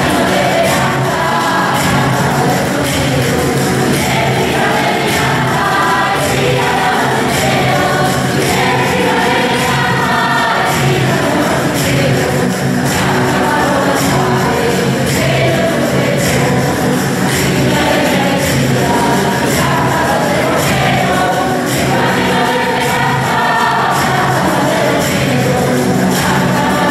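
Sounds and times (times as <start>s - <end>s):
choir singing a hymn: 0.0s - 26.9s
jingling percussion: 0.0s - 26.9s.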